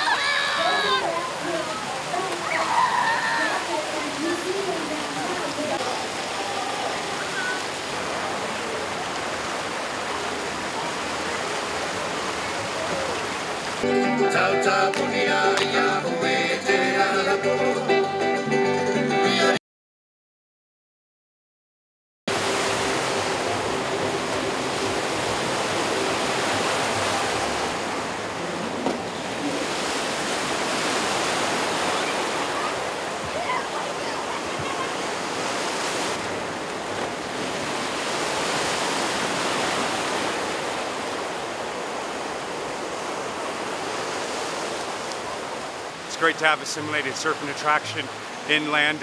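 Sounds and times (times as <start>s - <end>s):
churning wave pool water: 0.0s - 17.9s, 22.3s - 49.0s.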